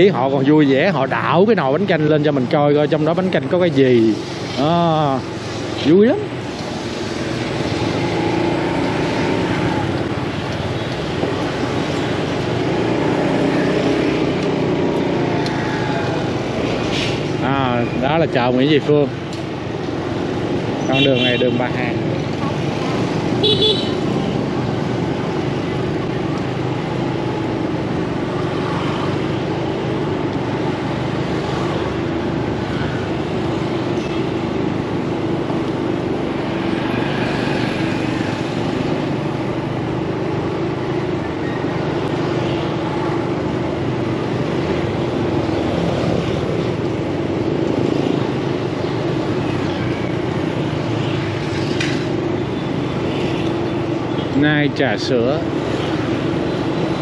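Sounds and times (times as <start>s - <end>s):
city traffic: 0.0s - 57.0s.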